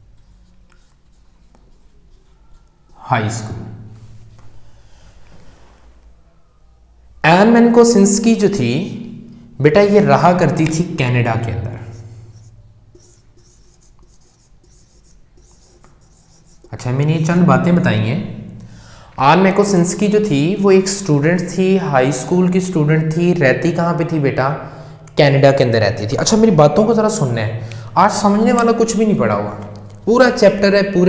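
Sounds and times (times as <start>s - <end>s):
marker scratching on whiteboard: 0.0s - 4.5s, 10.3s - 16.8s
light taps of marker: 15.4s - 16.7s.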